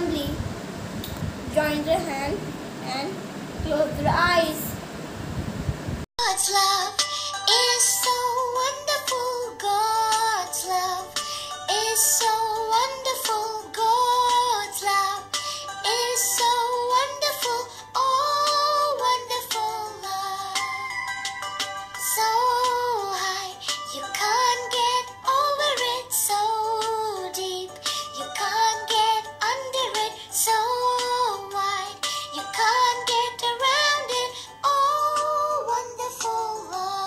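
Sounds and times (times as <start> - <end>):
girl singing slow melody: 0.0 - 4.8, 6.2 - 37.0.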